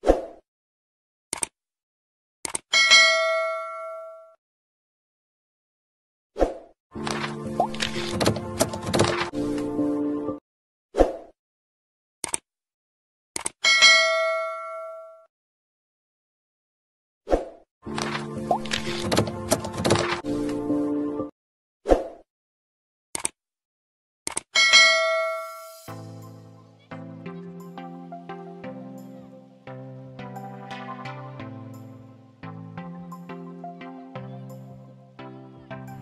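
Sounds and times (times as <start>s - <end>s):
background music: 7.0s - 10.4s, 17.9s - 21.3s, 25.8s - 36.0s
bell strike ringing: 24.6s - 26.3s.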